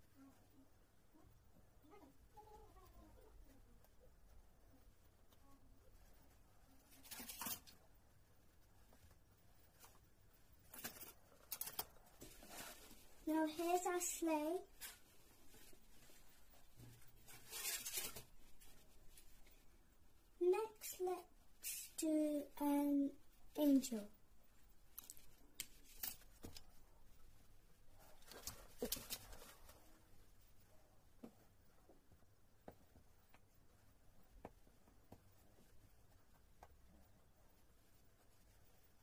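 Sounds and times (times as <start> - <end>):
plastic stencil rustling and clattering: 6.0 - 8.0, 8.6 - 19.7, 24.9 - 30.4.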